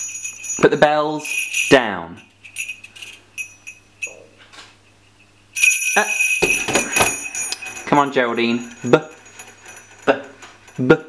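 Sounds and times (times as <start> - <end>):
jingle bells shaken: 0.0 - 4.4, 5.6 - 11.0.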